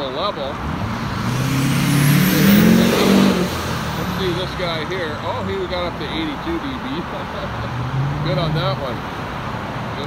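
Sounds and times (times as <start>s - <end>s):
tyre and traffic noise: 0.0s - 10.0s
vehicle engine accelerating: 0.4s - 5.1s.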